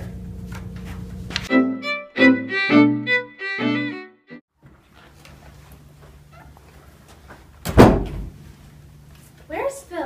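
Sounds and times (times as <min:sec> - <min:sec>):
door shutting with a bang: 0:07.6 - 0:08.4.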